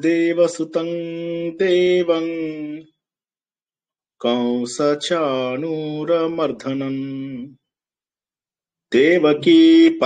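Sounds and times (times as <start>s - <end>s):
man chanting: 0.0s - 3.0s, 4.2s - 7.7s, 8.9s - 10.0s.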